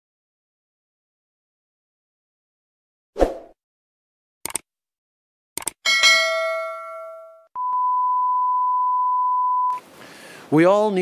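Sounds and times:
quick clicks: 0:04.4 - 0:04.7, 0:05.6 - 0:05.8
bell-like ding: 0:05.9 - 0:07.5
test-tone beep: 0:07.6 - 0:09.8.

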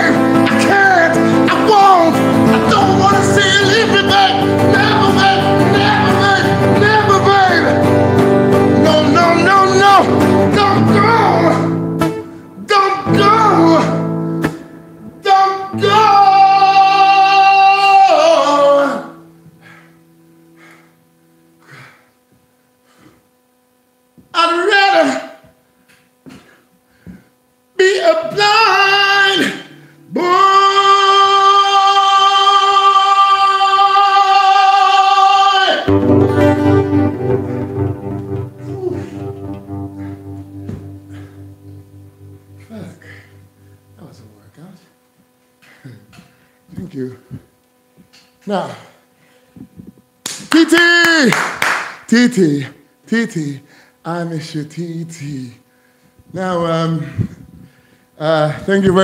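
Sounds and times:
faint electrical hum: 0:00.0 - 0:59.0
man's long drawn-out exclamation: 0:08.9 - 0:11.7, 0:15.2 - 0:19.2, 0:24.4 - 0:25.4, 0:38.6 - 0:39.4, 0:42.6 - 0:43.4
hand claps: 0:50.2 - 0:52.1.

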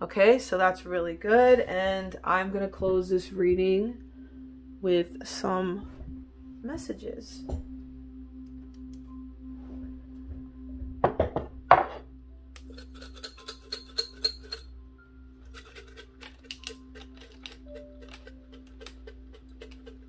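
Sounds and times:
tokens rattling in ceramic cup: 0:12.7 - 0:14.7.

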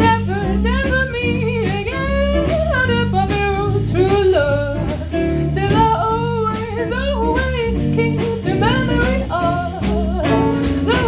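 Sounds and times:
bass guitar: 0:00.0 - 0:11.0
drums keeping a steady beat: 0:00.0 - 0:11.0
electric guitar: 0:00.0 - 0:11.0
woman singing: 0:00.0 - 0:11.0.

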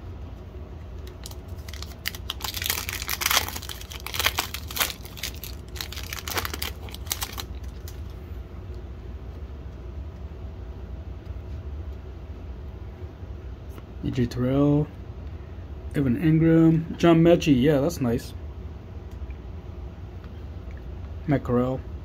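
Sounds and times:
plastic wrapper tearing and crinkling: 0:01.0 - 0:08.1.

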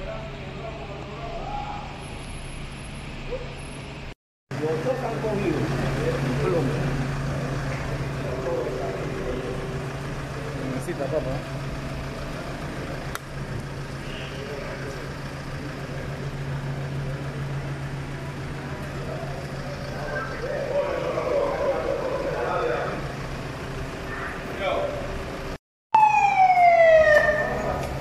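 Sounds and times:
indistinct voices: 0:18.5 - 0:23.3
police siren wail: 0:19.2 - 0:23.1, 0:25.9 - 0:28.0.

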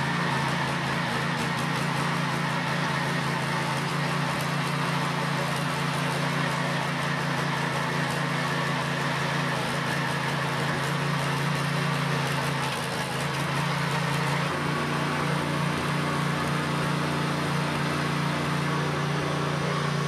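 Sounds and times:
tiller engine running: 0:00.0 - 0:20.0.

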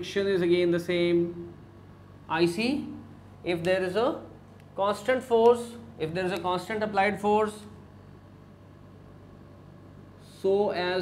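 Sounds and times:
low electrical hum: 0:00.0 - 0:11.0
faint hiss: 0:10.0 - 0:11.0.

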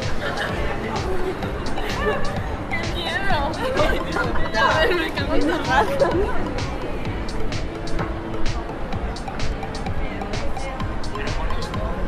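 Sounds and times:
background chatter: 0:00.0 - 0:12.0
music playing: 0:00.0 - 0:12.0
people talking nearby: 0:00.0 - 0:12.0.

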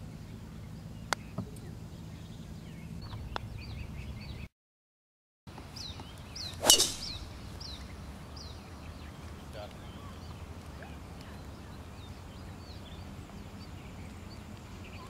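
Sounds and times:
birds chirping: 0:00.3 - 0:04.5, 0:05.6 - 0:15.0
golf driver striking ball: 0:06.6 - 0:07.7.

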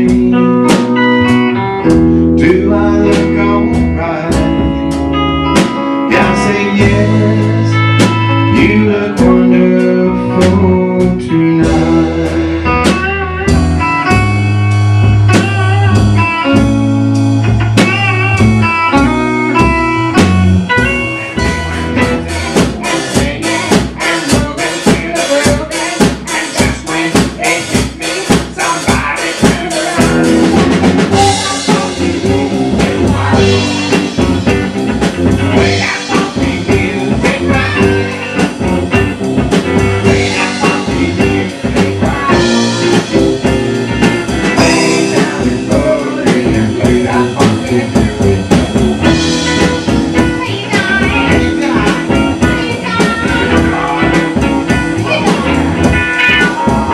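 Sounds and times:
drum beat: 0:00.0 - 0:11.0, 0:11.6 - 0:56.9
bass: 0:00.0 - 0:56.9
picked guitar lines: 0:00.0 - 0:56.9.

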